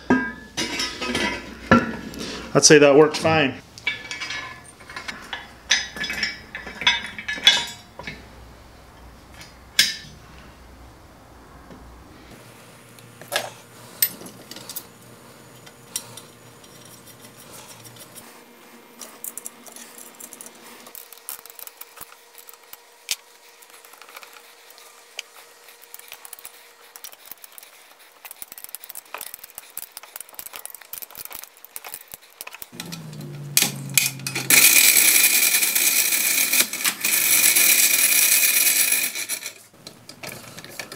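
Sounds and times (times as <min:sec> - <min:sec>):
metal parts clinking and knocking: 0:03.8 - 0:08.2, 0:25.9 - 0:40.9.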